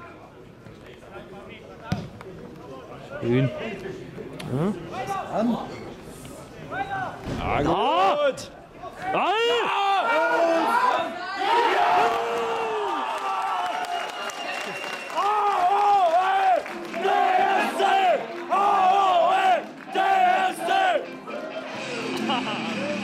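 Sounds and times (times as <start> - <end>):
fans shouting: 7.8 - 14.4, 15.1 - 23.0
crowd chanting: 16.5 - 22.1.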